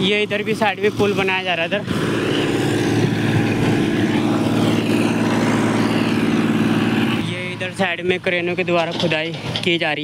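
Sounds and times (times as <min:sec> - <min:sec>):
motorbike engine running: 0:00.0 - 0:08.5
wind rushing over microphone: 0:01.8 - 0:07.3.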